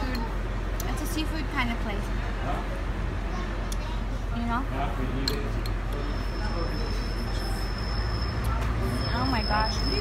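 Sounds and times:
buses and traffic rumbling: 0.0 - 10.0.

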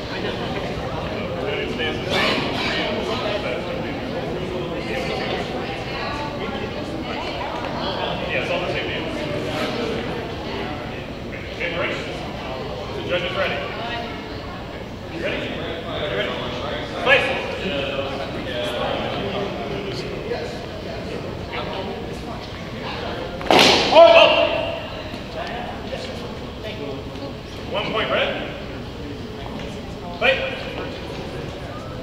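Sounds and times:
background chatter: 0.0 - 32.0
indistinct voices in a hall: 0.0 - 32.0
louder voice: 23.8 - 25.0.

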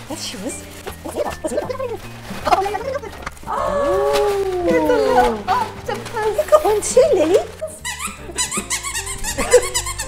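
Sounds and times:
dog toys squeaking: 1.0 - 10.0.

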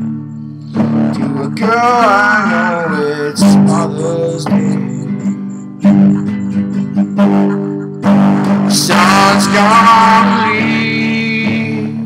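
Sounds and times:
classical guitar strumming: 0.0 - 12.0.

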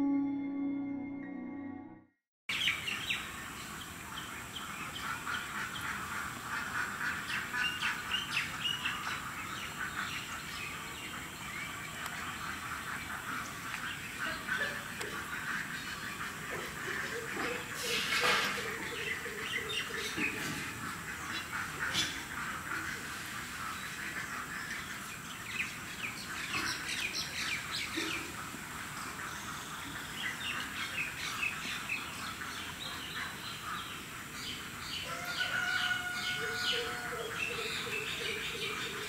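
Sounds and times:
birds chirping and calling: 2.5 - 39.0.

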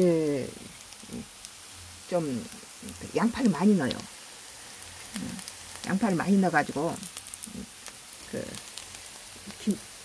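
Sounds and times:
pancakes sizzling in oil: 0.0 - 10.0
small crackling pops: 0.0 - 10.0.

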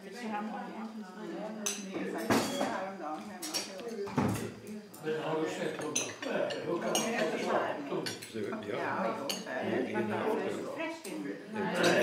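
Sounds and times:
murmur of table conversation: 0.0 - 12.0
cutlery clinking against plates: 1.6 - 2.8, 3.4 - 4.8, 5.6 - 9.6, 11.7 - 12.0.

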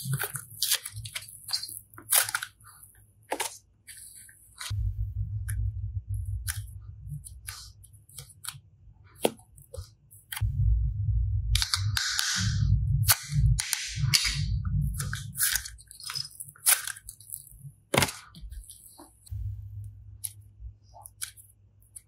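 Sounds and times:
sticky handling crackle: 0.0 - 4.7.

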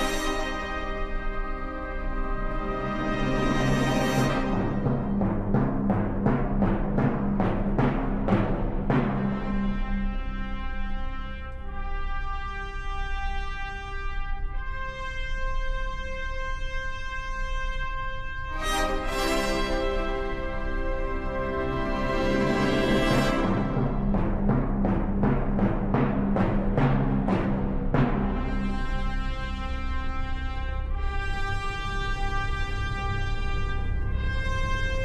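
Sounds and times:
symphony orchestra playing: 0.0 - 5.1, 18.5 - 24.2
brass chords: 0.0 - 6.7, 8.2 - 35.0
timpani beats: 0.0 - 12.0, 18.5 - 35.0.

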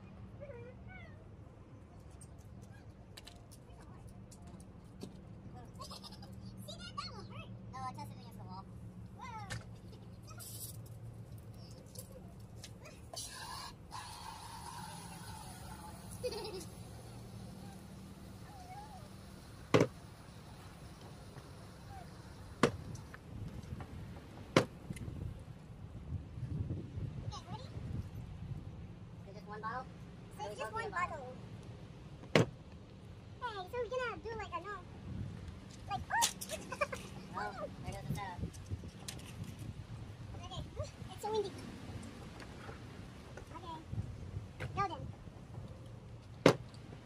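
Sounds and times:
steady low hum: 3.9 - 47.0.

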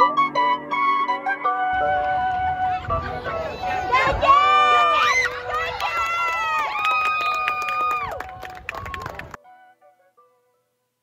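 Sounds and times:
crowd noise: 1.4 - 9.4
spectators yelling: 3.4 - 8.2.

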